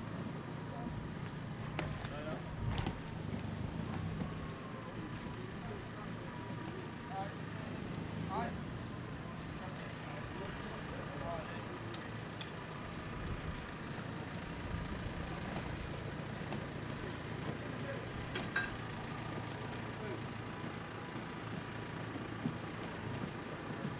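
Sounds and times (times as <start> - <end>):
faint distant voices: 0.2 - 23.9.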